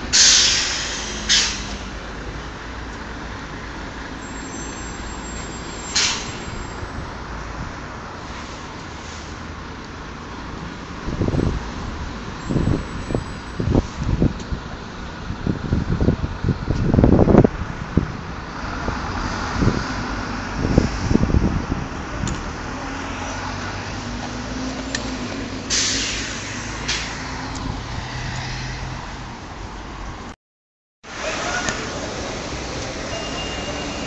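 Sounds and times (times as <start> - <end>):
air brakes hissing: 0.0 - 2.0, 4.3 - 6.8, 25.6 - 27.2
wind buffeting microphone: 11.0 - 22.5.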